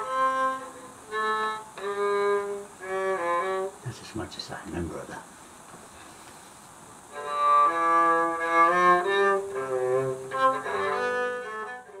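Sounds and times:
bowed string melody: 0:00.0 - 0:05.1, 0:07.1 - 0:12.0.

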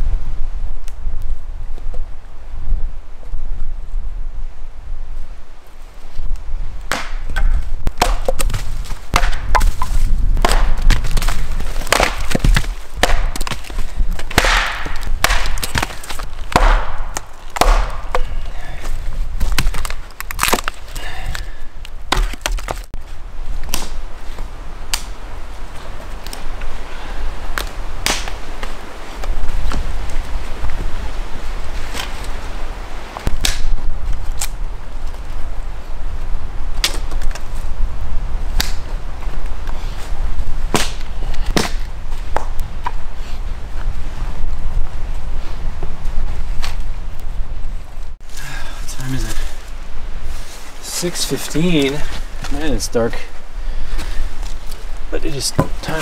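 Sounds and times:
axe chopping firewood: 0:06.9 - 0:21.4, 0:22.1 - 0:22.9, 0:23.6 - 0:24.0, 0:27.6 - 0:28.4, 0:33.3 - 0:33.7, 0:40.7 - 0:42.5
wood cracking apart: 0:06.9 - 0:22.9.

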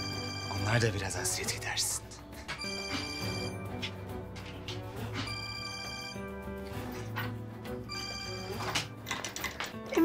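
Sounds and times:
telephone ringing: 0:00.0 - 0:01.2, 0:02.5 - 0:03.9, 0:05.0 - 0:06.5, 0:07.7 - 0:09.0
background score music: 0:00.0 - 0:10.0.

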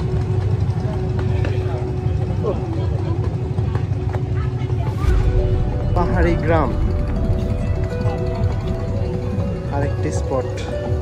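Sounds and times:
low engine rumble: 0:00.0 - 0:11.0
people talking: 0:00.8 - 0:07.1.

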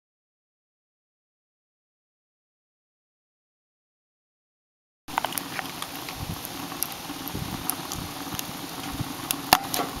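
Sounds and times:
fire crackles and pops: 0:05.1 - 0:10.0
wood fire hissing: 0:05.1 - 0:10.0.

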